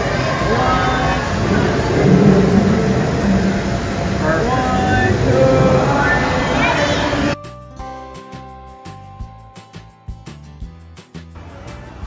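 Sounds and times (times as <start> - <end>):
indistinct voices: 0.0 - 7.4
low background rumble: 0.5 - 7.3.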